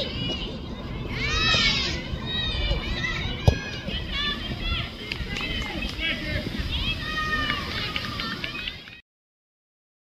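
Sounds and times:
players and spectators shouting: 0:00.0 - 0:08.9
ball being kicked: 0:03.4 - 0:03.8.

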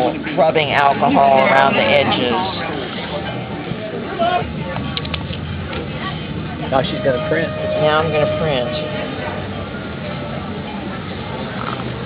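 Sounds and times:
distant voices: 0:00.0 - 0:12.0
low outdoor rumble: 0:00.2 - 0:12.0.

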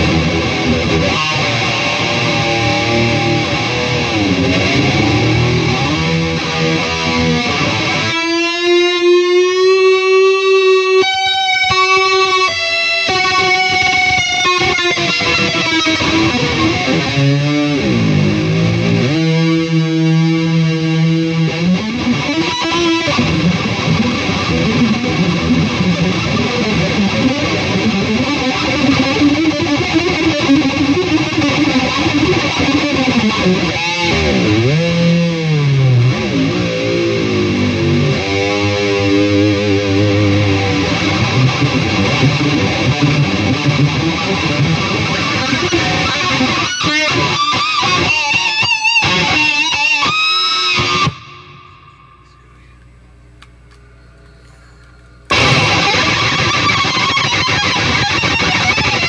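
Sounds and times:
distorted electric guitar solo: 0:00.0 - 0:52.8, 0:55.3 - 0:59.0.

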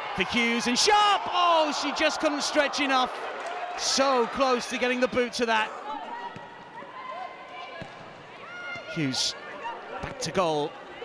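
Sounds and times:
players shouting: 0:00.0 - 0:11.0.

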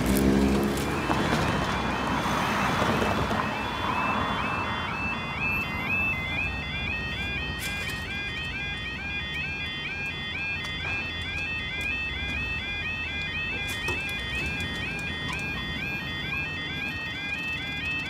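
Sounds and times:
low traffic rumble: 0:00.0 - 0:18.0
level crossing two-tone alarm: 0:00.6 - 0:18.0.

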